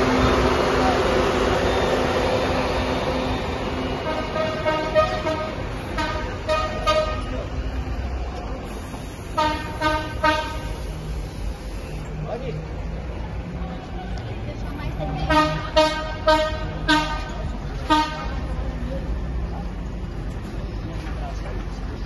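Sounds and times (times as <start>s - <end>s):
bus engine hiss and rumble: 0.0s - 22.0s
bus horn toots: 4.0s - 7.4s, 9.3s - 11.0s, 15.2s - 18.5s.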